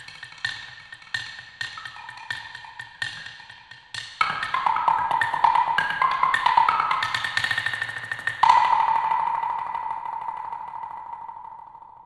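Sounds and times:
wooden blocks struck with sticks: 4.2 - 11.6.

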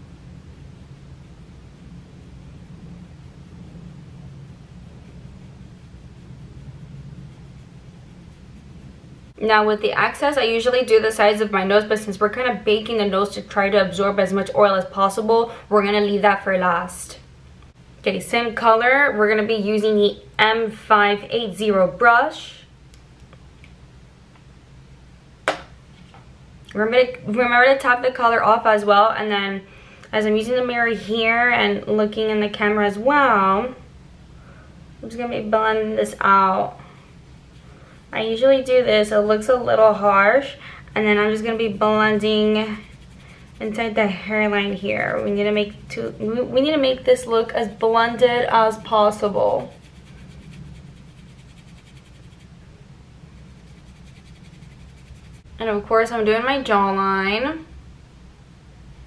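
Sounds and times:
faint room hum: 0.0 - 59.0
makeup brush strokes on skin: 1.1 - 11.0, 36.2 - 52.6, 53.2 - 55.5.

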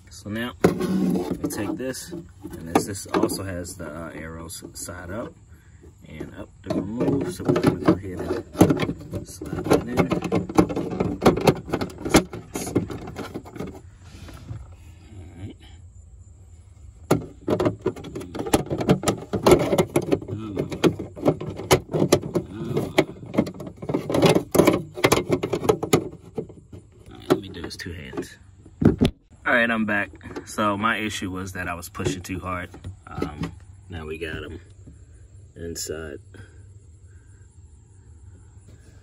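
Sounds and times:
plastic cover clicking and knocking: 6.7 - 13.8, 17.0 - 29.2.

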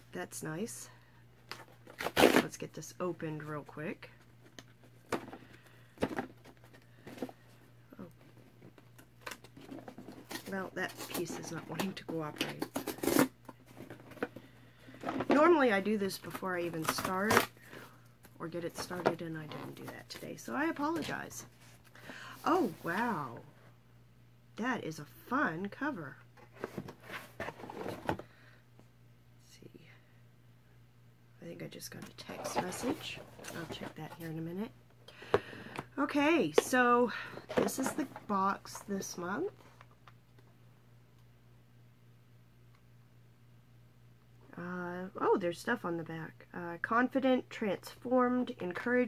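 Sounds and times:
cardboard rustling: 26.5 - 28.2, 32.0 - 34.4, 36.5 - 38.9.

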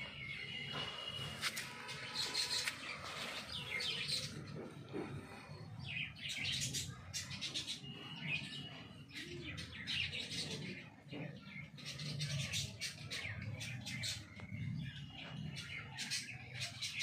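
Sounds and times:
birds chirping: 0.0 - 17.0.

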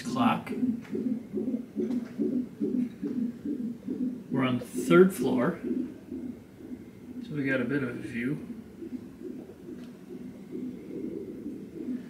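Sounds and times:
doppler heartbeat pulses: 0.2 - 12.0.

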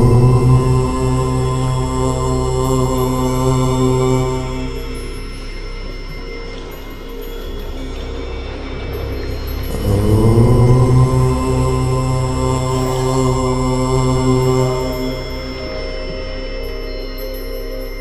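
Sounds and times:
low voice chanting om: 0.0 - 18.0
steady background drone: 0.0 - 18.0.

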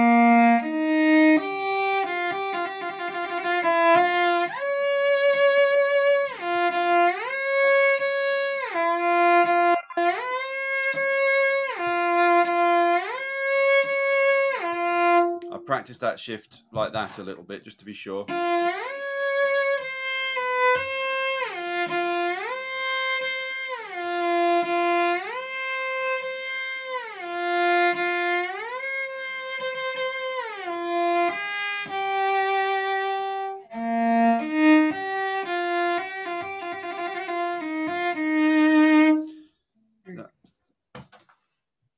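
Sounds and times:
cello sliding between notes: 0.0 - 15.9, 18.3 - 39.4.

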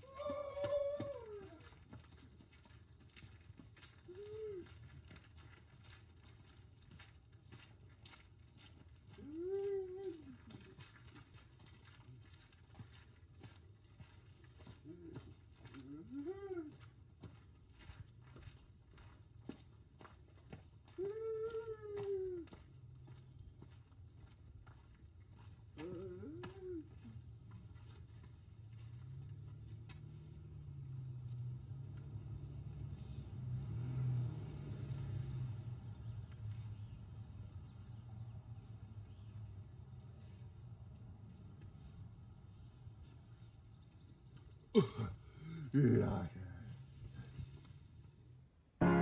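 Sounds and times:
soft footsteps on dirt path: 0.0 - 49.0.

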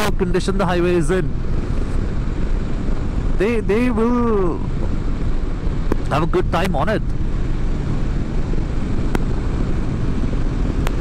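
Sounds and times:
motorcycle engine cruising: 0.0 - 11.0
wind and road rush: 0.0 - 11.0.

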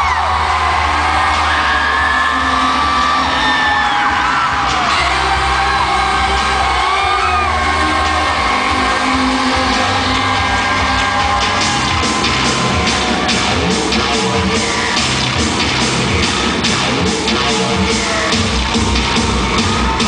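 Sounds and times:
fans screaming and whooping: 0.0 - 20.0
live pop music over pa: 0.0 - 20.0.

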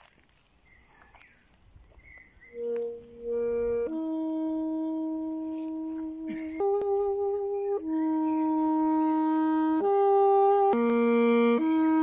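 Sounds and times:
saxophone solo melody: 2.5 - 12.0.

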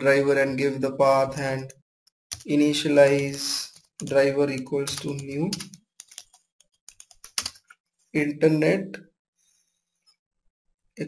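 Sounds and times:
keyboard typing clicks: 3.2 - 7.7.

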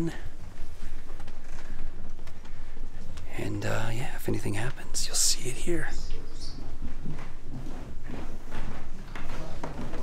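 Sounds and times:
footsteps of people walking: 0.1 - 3.3, 6.0 - 10.0.

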